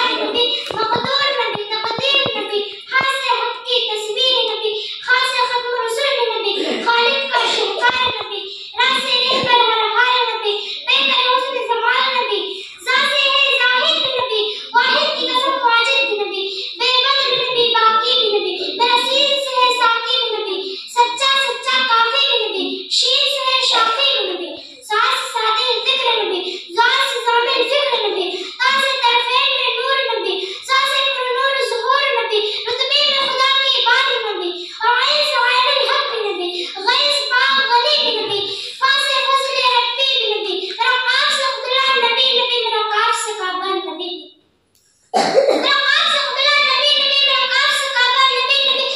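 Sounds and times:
girl chanting over pa: 6.5 - 19.8, 32.5 - 34.4.

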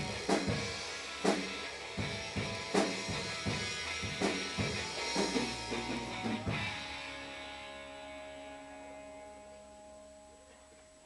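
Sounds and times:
band chord ringing out: 0.0 - 10.6
electrical hum from amplifiers: 0.0 - 11.0.

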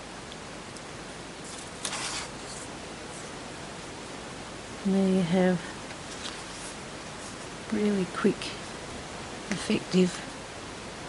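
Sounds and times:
recording hiss: 0.0 - 11.0
paper rustle: 1.4 - 3.3, 6.0 - 7.5.

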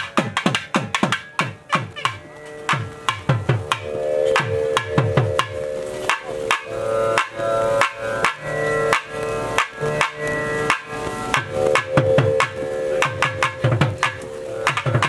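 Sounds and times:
double-reed pipe melody: 0.0 - 15.0
sharp drum strokes: 0.0 - 15.0
steady held drone: 2.2 - 15.0.

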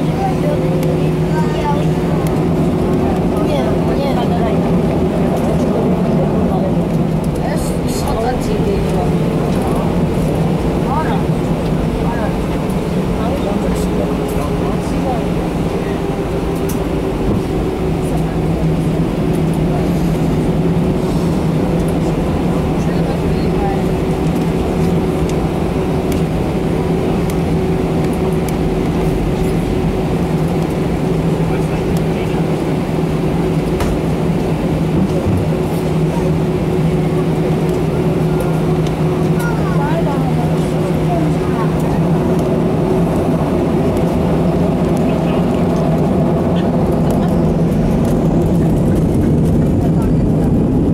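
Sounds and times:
jet engines droning: 0.0 - 50.9.

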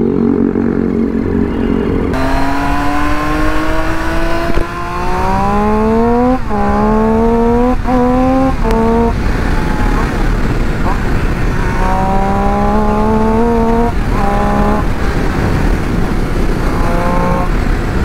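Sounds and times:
motorcycle engine accelerating: 0.0 - 18.0.

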